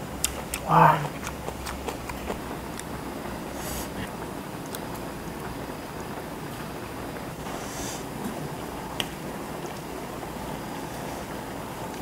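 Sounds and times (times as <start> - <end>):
stew bubbling in a pot: 0.0 - 12.0.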